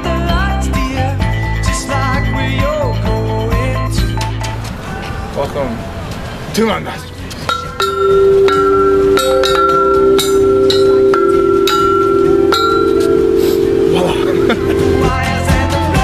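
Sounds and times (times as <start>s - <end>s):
tubular chimes struck with mallet: 7.5s - 15.4s.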